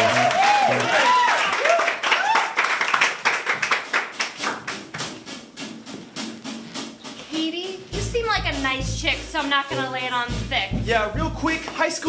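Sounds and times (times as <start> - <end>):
person whooping: 0.0 - 2.6
audience clapping: 0.0 - 5.1
low musical notes: 5.3 - 11.8.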